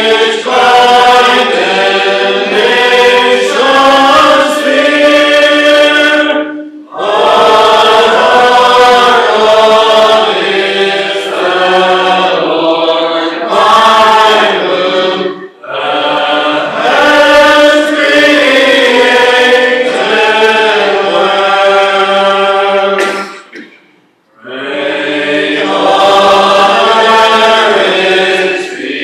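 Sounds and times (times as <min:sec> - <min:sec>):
congregation singing in unison: 0:00.0 - 0:23.6, 0:24.3 - 0:29.0.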